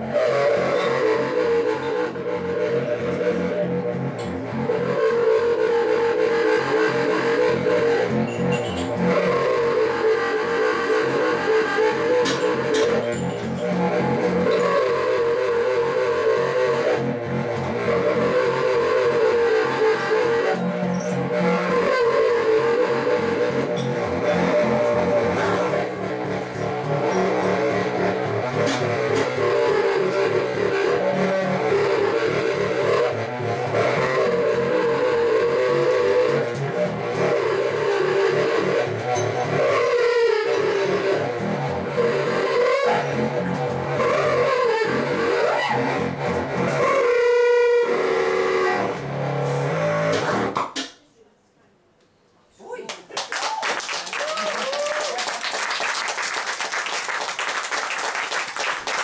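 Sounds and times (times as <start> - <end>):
contrabass saxophone drone: 0.0 - 50.6.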